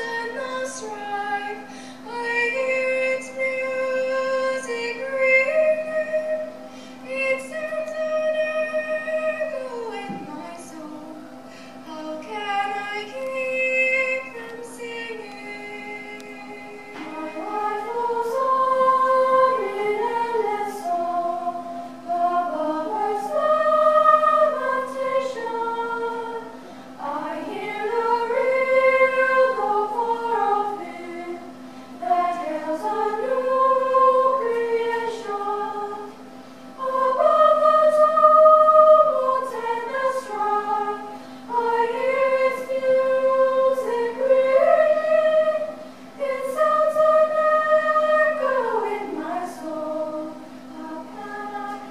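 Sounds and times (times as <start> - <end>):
choir of women singing: 0.0 - 11.2, 11.9 - 51.9.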